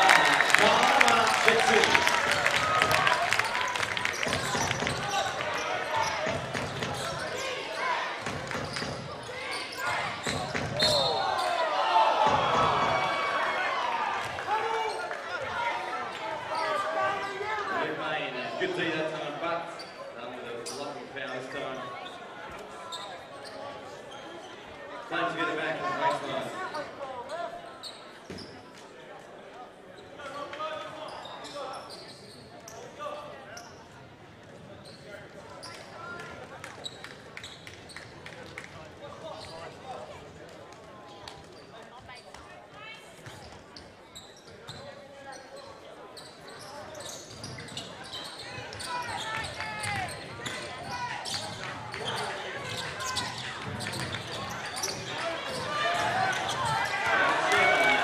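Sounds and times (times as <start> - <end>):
spectators chatting: 0.0 - 58.0.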